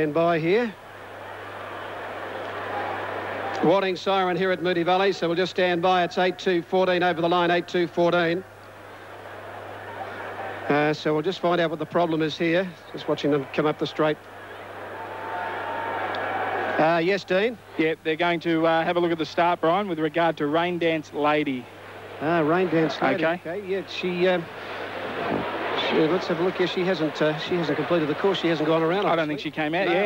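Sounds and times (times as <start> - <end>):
crowd and track noise: 0.0 - 30.0
man speaking: 22.2 - 24.4, 25.8 - 30.0.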